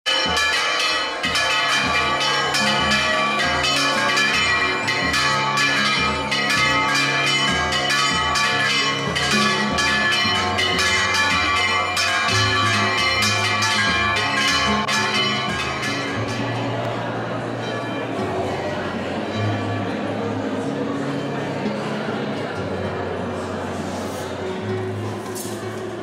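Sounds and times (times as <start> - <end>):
church bells ringing a peal: 0.1 - 25.5.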